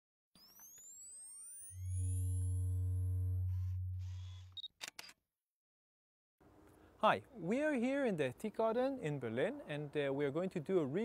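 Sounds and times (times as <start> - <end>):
electronic rising sweeps: 0.4 - 4.6
sharp shutter-like clicks: 4.0 - 5.2.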